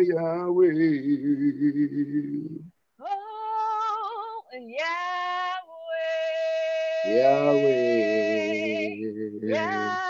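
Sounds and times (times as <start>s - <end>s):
woman singing with vibrato: 3.0s - 10.0s.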